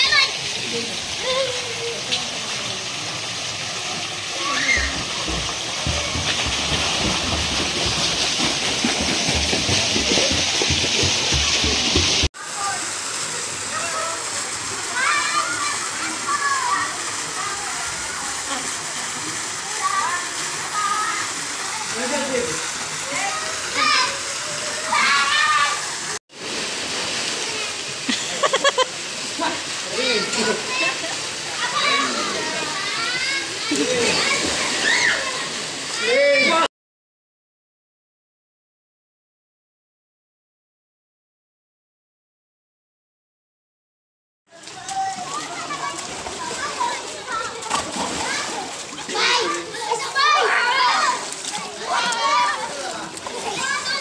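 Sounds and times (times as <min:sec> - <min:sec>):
water pouring into pool: 0:00.0 - 0:36.7, 0:44.5 - 0:54.0
children shouting: 0:04.3 - 0:05.1, 0:13.6 - 0:18.4, 0:23.1 - 0:26.0, 0:31.5 - 0:36.7, 0:44.7 - 0:54.0.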